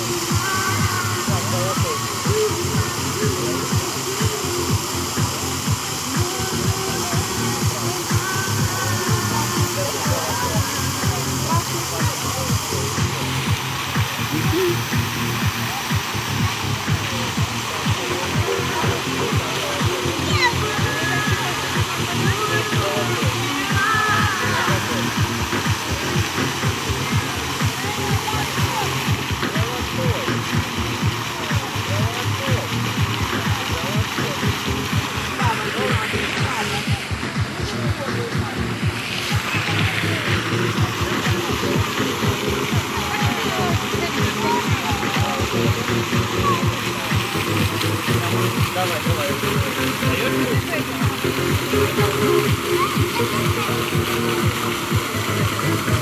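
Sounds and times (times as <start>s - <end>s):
music playing: 0.0s - 56.0s
people's voices: 0.0s - 56.0s
steady rushing noise: 0.0s - 56.0s.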